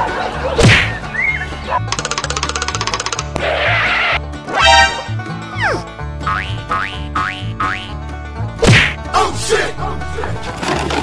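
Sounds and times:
comedy music with beat: 0.0 - 10.5.

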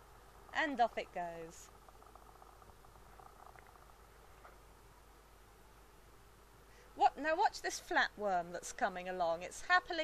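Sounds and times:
faint steady hiss: 0.0 - 10.0
faint crackling ticks: 0.2 - 4.9.

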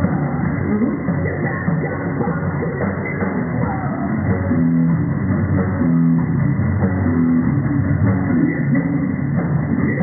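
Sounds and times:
drums: 0.0 - 10.0
electric guitar chords: 0.0 - 10.0.

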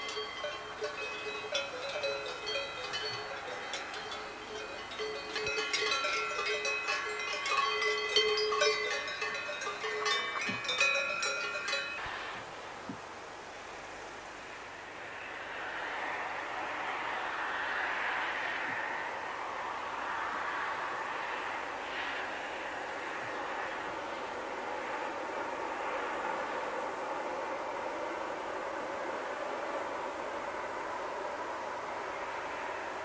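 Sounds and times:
cow bells clanking: 0.0 - 12.3.

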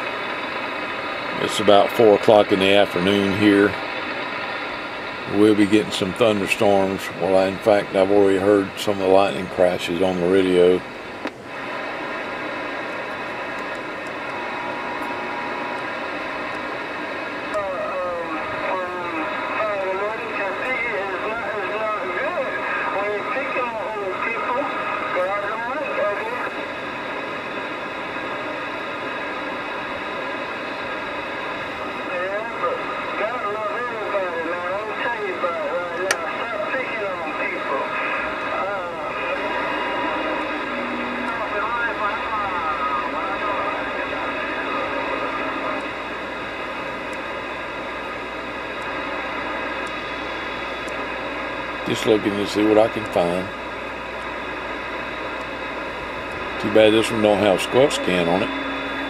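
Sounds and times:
radio static hiss: 0.0 - 59.0
warbling radio signals: 31.9 - 53.6, 54.7 - 59.0
sharp static crack: 35.5 - 59.0.

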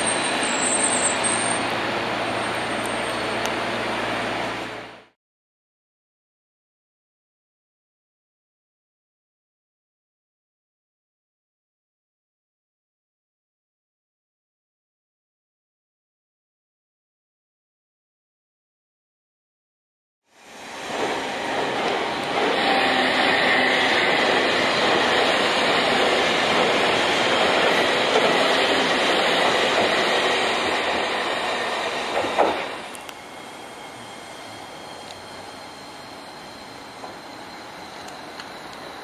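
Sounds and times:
high wheel squeal: 0.0 - 3.5, 20.4 - 39.0
approaching tram rumble: 0.0 - 5.1, 20.4 - 39.0
tram wheels on rails: 0.0 - 5.1, 20.4 - 39.0.

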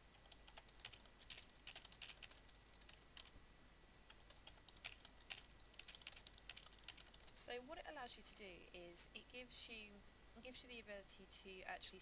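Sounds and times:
typing on computer keyboard: 0.2 - 3.3, 4.1 - 7.4.

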